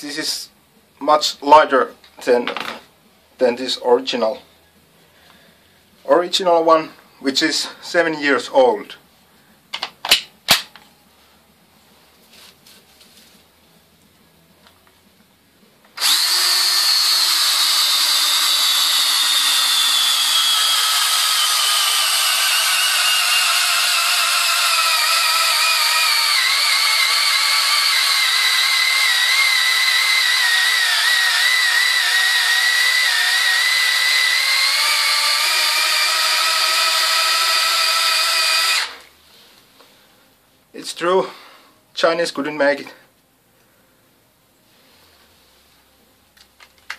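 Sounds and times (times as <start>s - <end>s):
cordless drill boring into log: 16.0s - 39.1s.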